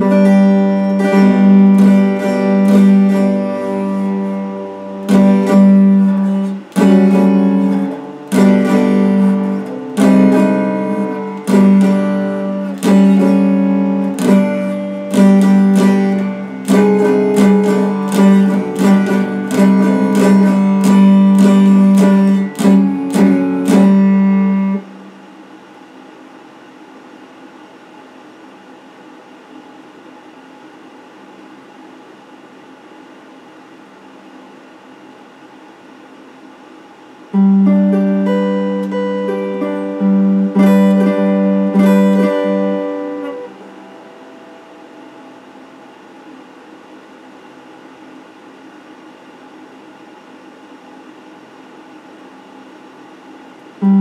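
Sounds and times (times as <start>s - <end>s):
electric guitar picked melody: 0.0s - 25.2s, 37.3s - 46.6s, 53.7s - 54.0s
steady low hiss: 0.0s - 54.0s.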